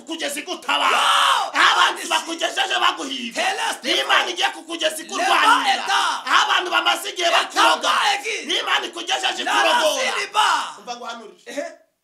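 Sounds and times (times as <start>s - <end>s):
man talking: 0.0s - 1.0s, 1.6s - 11.9s.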